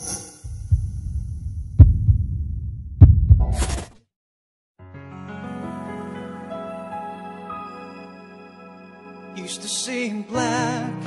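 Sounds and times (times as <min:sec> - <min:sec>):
heavy thuds: 0:00.4 - 0:03.9
deep pulsing bass rumble: 0:00.5 - 0:03.6.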